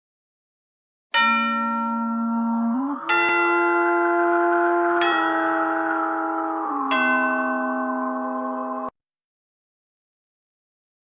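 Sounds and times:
bell-like chime chord: 1.2 - 9.0.

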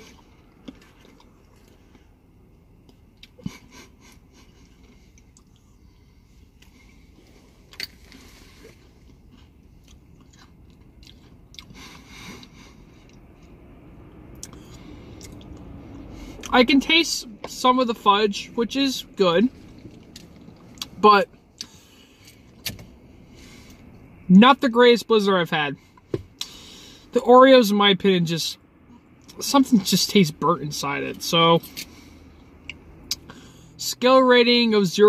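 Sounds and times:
quiet chewing: 6.6 - 13.5.

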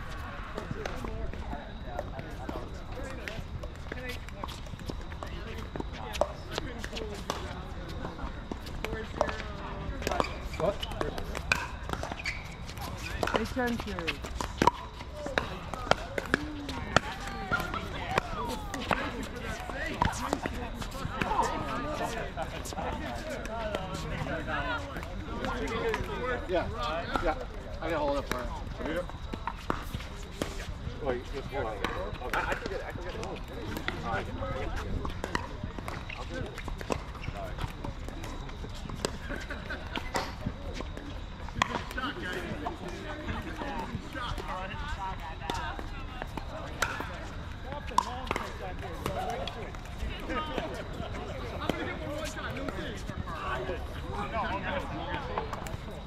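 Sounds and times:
people talking and calling: 0.0 - 56.0.

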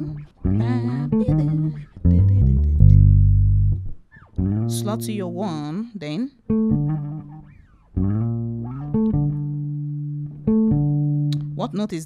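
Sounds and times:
electric bass guitar lick: 0.0 - 5.8, 6.4 - 11.8.

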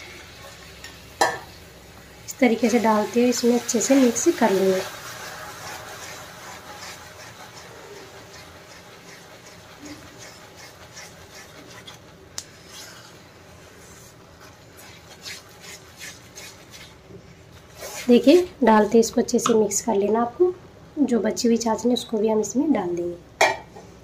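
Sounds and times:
syrup mixture sizzling: 0.0 - 19.8
spatula scraping a pan: 2.6 - 19.1.

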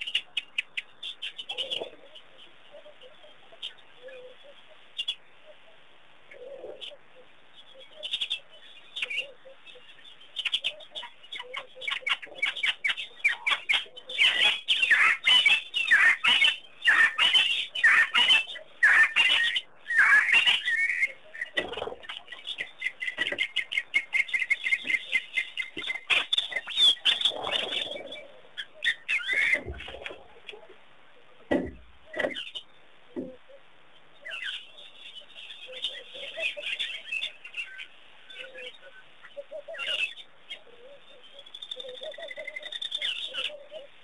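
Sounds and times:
birds chirping and calling: 0.0 - 44.0.

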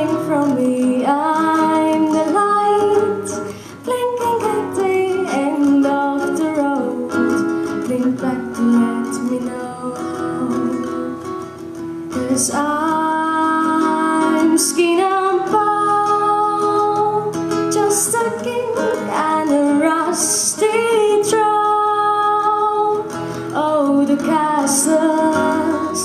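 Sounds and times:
classical guitar: 0.0 - 26.0
woman singing: 0.0 - 26.0.

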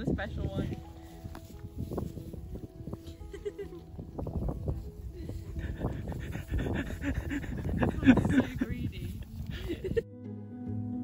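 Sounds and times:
alpacas breathing and snuffling: 0.3 - 10.0.

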